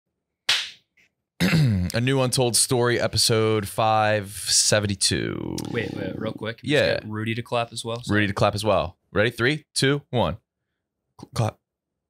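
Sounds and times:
hand clap: 0:00.5 - 0:00.8
person speaking drawn-out vowel: 0:05.6 - 0:06.9.

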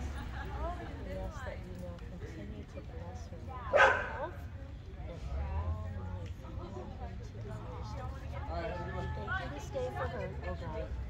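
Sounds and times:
faint low talk: 0:00.0 - 0:11.0
dog barking: 0:03.7 - 0:04.3.

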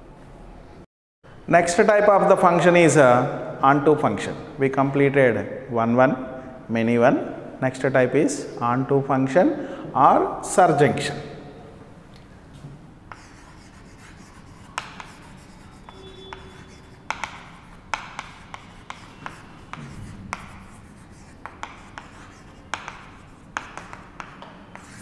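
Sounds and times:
chalk writing on a chalkboard: 0:13.1 - 0:25.0.

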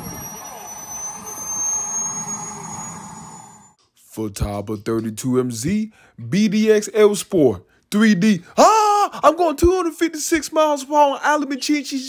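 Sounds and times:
model jet turbine whining: 0:00.0 - 0:03.8.

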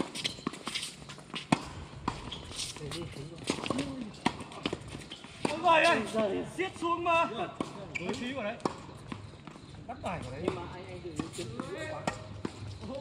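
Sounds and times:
tennis balls struck and bouncing: 0:00.0 - 0:02.7, 0:03.4 - 0:13.0.

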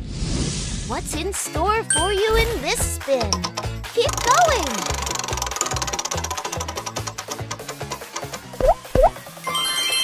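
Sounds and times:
upbeat background music: 0:00.9 - 0:10.0
prize wheel ticking: 0:03.0 - 0:09.1.

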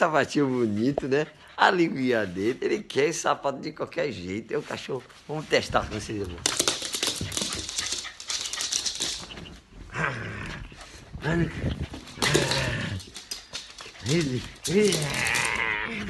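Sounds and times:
scuffling and rustling: 0:04.1 - 0:16.0.

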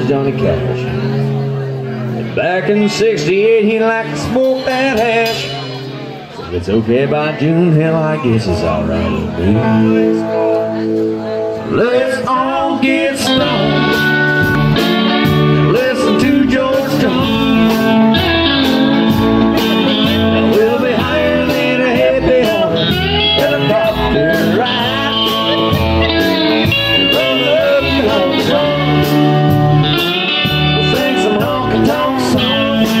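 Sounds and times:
band playing country-blues music: 0:00.0 - 0:33.0.

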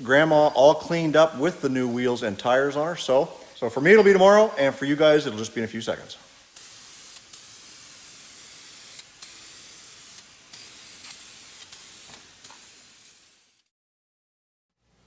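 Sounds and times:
aerosol can spraying: 0:05.2 - 0:13.7.

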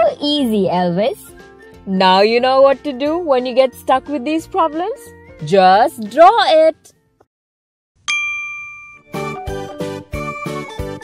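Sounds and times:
bright chime ding: 0:08.1 - 0:09.5.

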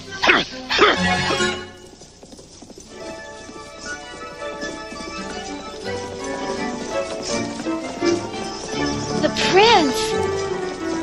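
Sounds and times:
background music: 0:00.0 - 0:11.0
horse hooves clip-clopping: 0:00.0 - 0:11.0.

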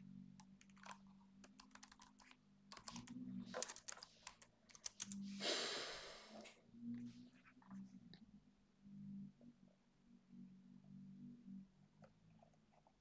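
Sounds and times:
keyboard key clicks: 0:00.4 - 0:05.2.

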